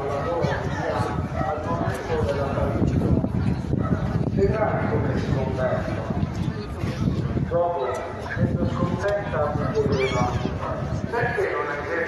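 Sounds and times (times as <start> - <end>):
people talking: 4.3 - 12.0.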